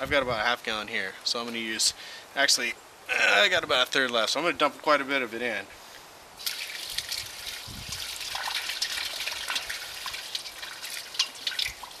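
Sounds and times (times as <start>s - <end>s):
liquid pouring into metal casing: 6.4s - 12.0s.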